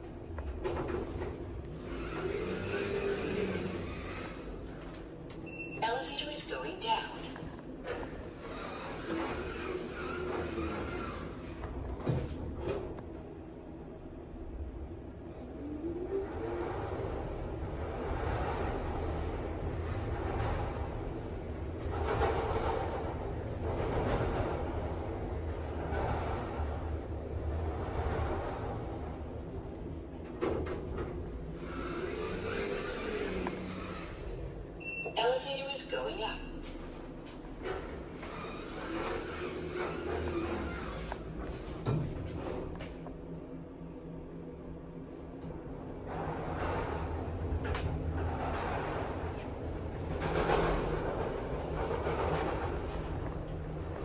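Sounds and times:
elevator ride rumble: 0.0s - 54.0s
elevator hum gliding in pitch: 7.8s - 35.1s.

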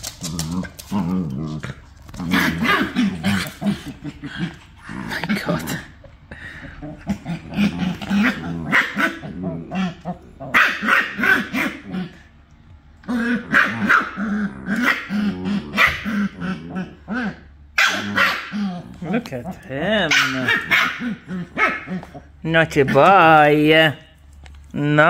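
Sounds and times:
dogs growling and barking: 0.0s - 23.1s.

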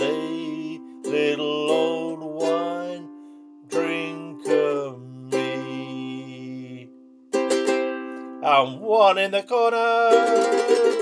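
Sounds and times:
man singing: 0.0s - 7.0s, 8.4s - 11.0s
ukulele strumming: 0.0s - 11.0s.

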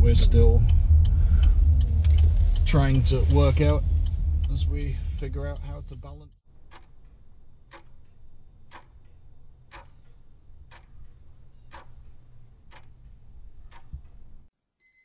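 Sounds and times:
clock ticking: 0.0s - 14.5s
low steady hum: 0.0s - 14.5s
alarm clock beep: 14.8s - 15.0s.

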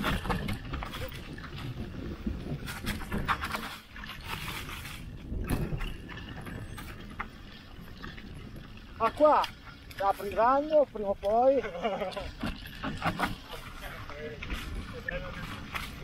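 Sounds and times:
bike knocks and rattles: 0.0s - 10.8s, 12.3s - 16.0s
tyres rumbling on dirt: 0.0s - 16.0s
wind: 0.0s - 16.0s.

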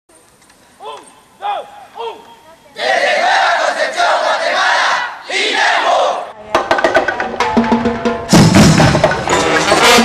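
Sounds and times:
group shouting in unison: 2.8s - 6.3s.

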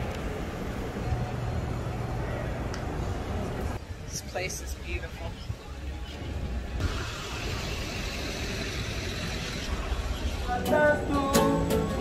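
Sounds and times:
street traffic passing: 0.0s - 12.0s.

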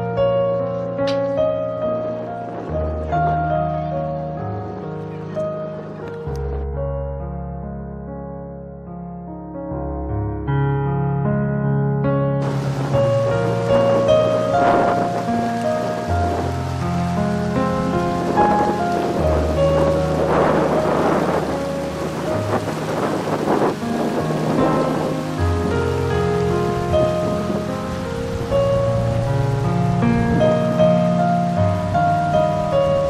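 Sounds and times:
slow keyboard chords: 0.0s - 33.0s
rushing noise: 12.4s - 33.0s.

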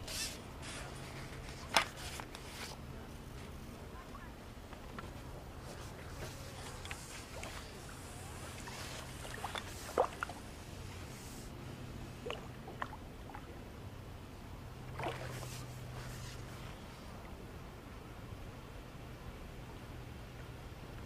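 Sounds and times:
low steady hum: 0.0s - 21.0s
faint short splashes: 5.8s - 10.5s, 12.2s - 13.5s, 14.8s - 16.7s.

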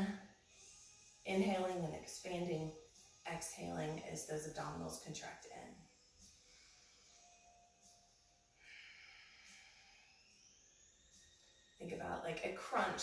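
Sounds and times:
soft hissy exhale: 6.2s - 7.4s, 8.5s - 10.6s.

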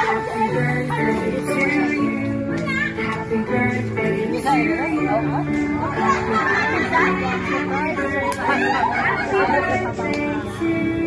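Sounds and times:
faint music: 0.0s - 11.0s
group chatter: 0.0s - 11.0s.

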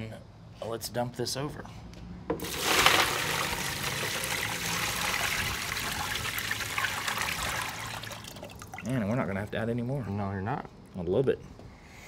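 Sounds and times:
liquid pouring and splashing: 2.4s - 9.1s.

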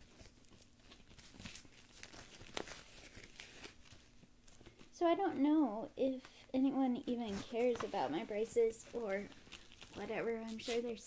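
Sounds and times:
fabric rustling and crinkling: 0.0s - 5.6s, 6.8s - 11.0s.

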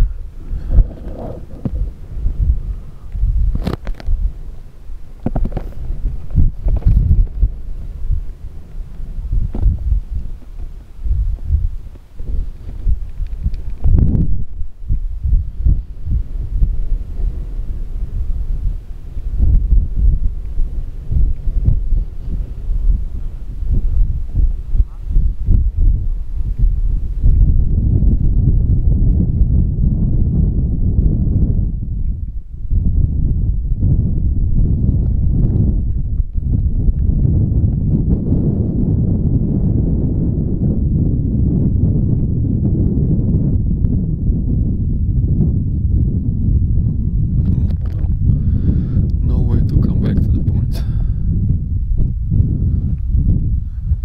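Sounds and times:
gusty wind buffeting microphone: 0.0s - 54.0s.

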